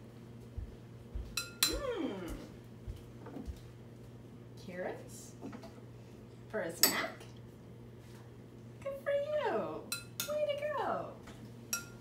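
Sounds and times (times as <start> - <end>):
faint steady hum: 0.0 - 12.0
soft voice sounds: 1.7 - 2.6
spoon clinking against dish: 11.7 - 12.0.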